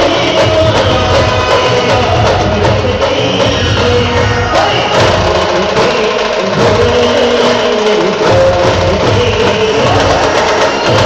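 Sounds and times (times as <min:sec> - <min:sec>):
drums: 0:00.0 - 0:11.0.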